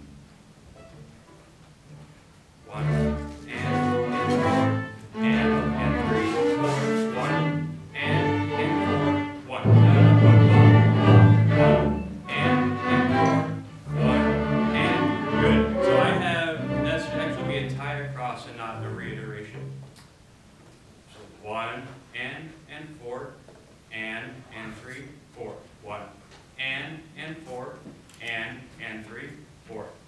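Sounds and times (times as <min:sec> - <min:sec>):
ensemble playing held chords: 0:00.0 - 0:19.6.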